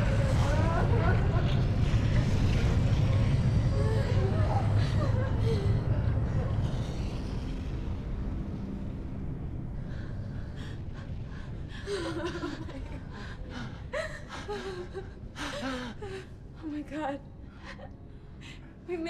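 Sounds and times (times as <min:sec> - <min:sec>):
low rumble: 0:00.0 - 0:19.0.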